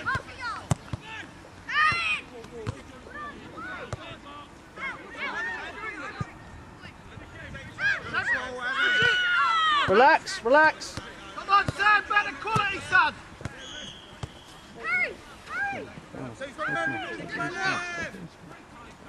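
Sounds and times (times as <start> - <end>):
distant shouts and calls: 0.0 - 18.2.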